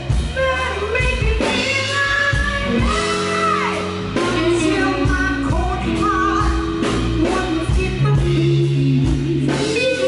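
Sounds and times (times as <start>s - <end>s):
blues-rock band playing: 0.0s - 10.0s
woman singing: 0.0s - 10.0s.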